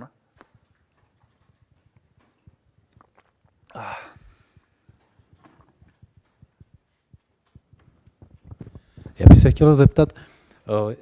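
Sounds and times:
microphone handling knocks: 7.6 - 10.1.

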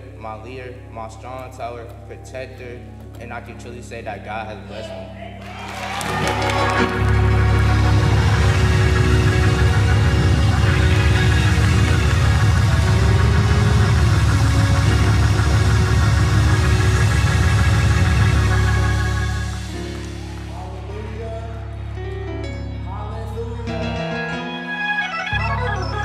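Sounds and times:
hammond organ chords: 0.0 - 26.0
heavy pulsing bass: 6.1 - 22.3.

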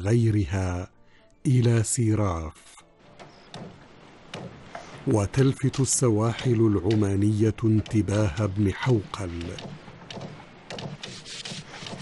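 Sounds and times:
hand tool scraping wood: 7.8 - 12.0.

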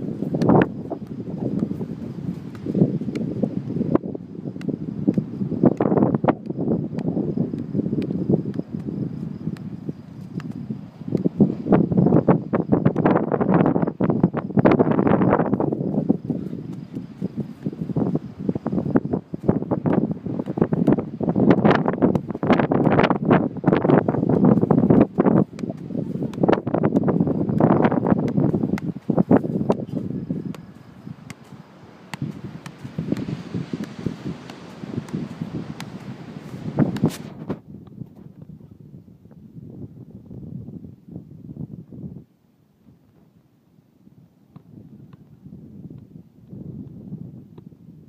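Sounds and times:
wind buffeting microphone: 0.0 - 42.3, 44.6 - 48.0.

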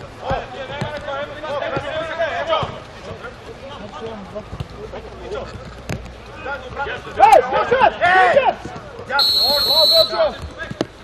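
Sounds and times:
players calling: 0.0 - 11.0.

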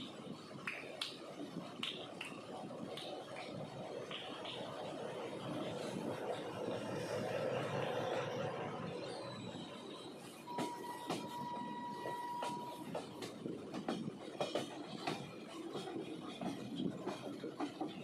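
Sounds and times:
train wheels rumbling on rails: 0.0 - 18.0
clacks over rail joints: 10.4 - 18.0.

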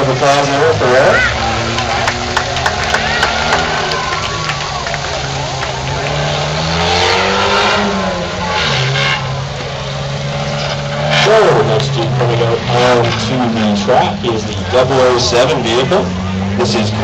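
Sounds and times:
truck engine revving on dirt: 0.0 - 17.0.

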